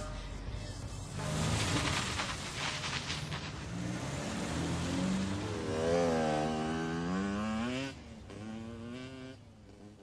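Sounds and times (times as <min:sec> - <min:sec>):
vehicle engine revving: 0:03.7 - 0:09.9.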